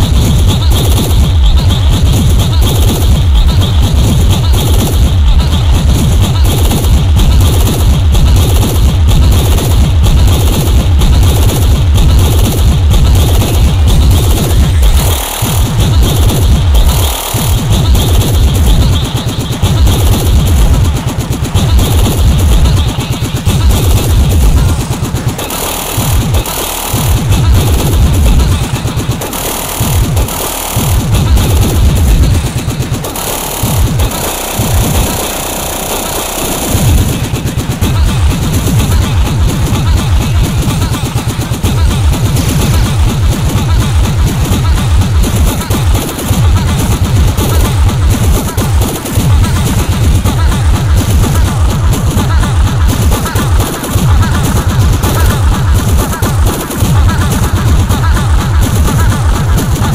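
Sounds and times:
fast distorted kick drums: 0.0s - 59.9s
harsh noisy electronic textures: 0.0s - 59.9s.

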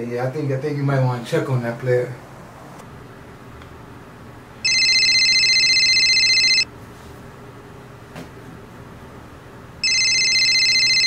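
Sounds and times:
mobile phone ringing: 4.6s - 6.7s, 9.8s - 11.0s.

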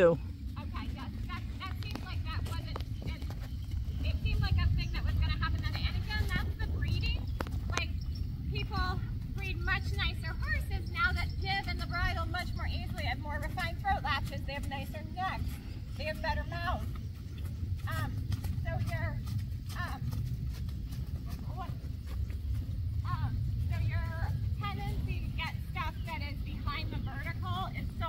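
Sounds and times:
steady low rumble: 0.0s - 28.0s
horse hoofbeats on sand: 0.3s - 28.0s.

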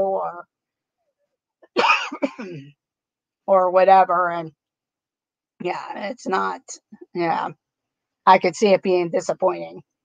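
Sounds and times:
woman clearing her throat: 1.8s - 2.7s.

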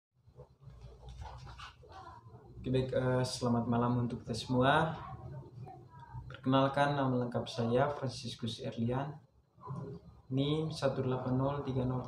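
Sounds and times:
rustling of person moving: 0.3s - 2.6s.

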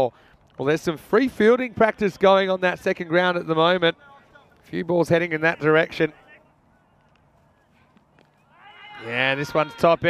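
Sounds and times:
man commentating: 0.6s - 6.4s, 9.0s - 10.0s.

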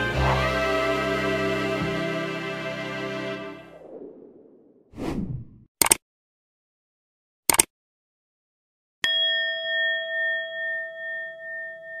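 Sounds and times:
notification bell chime: 9.0s - 12.0s.

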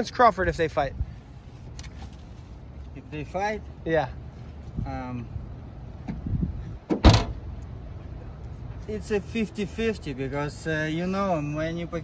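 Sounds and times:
low outdoor rumble: 0.0s - 12.0s
sharp thump: 6.9s - 7.4s.

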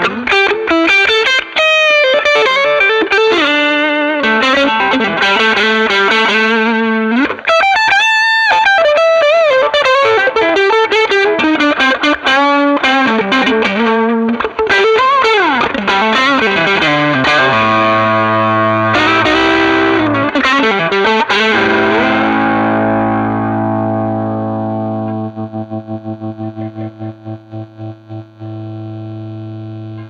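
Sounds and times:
overdriven electric guitar: 0.0s - 30.0s.

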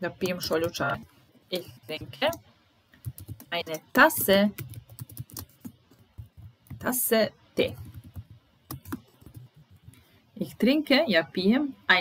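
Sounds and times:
computer keyboard keystrokes: 3.0s - 6.9s, 7.7s - 9.5s.

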